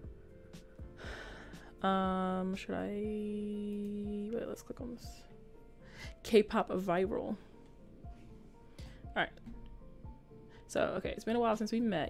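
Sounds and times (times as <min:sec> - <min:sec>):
faint background music: 0:00.0 - 0:12.0
woman speaking: 0:01.8 - 0:05.2, 0:06.2 - 0:07.4, 0:09.1 - 0:09.4, 0:10.7 - 0:12.0.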